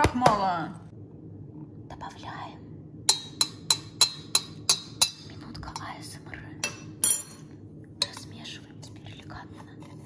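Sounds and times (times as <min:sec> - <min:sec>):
metal spoon tapping copper pot: 0:03.1 - 0:06.0.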